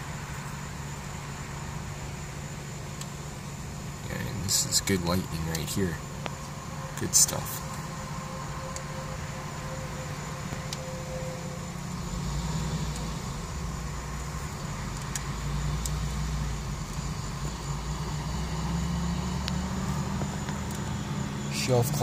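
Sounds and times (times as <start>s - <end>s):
motor vehicles rumbling: 0.0s - 22.0s.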